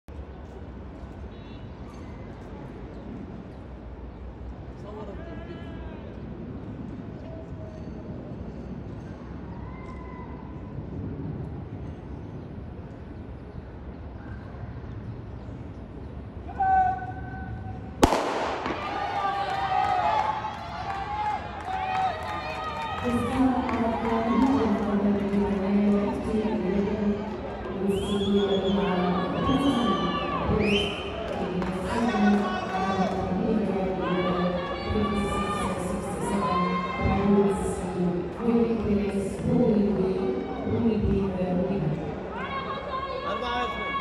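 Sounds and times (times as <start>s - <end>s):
stadium murmur: 16.5s - 44.0s
starting gun shot: 18.0s - 19.2s
loud voices calling out: 18.0s - 41.0s.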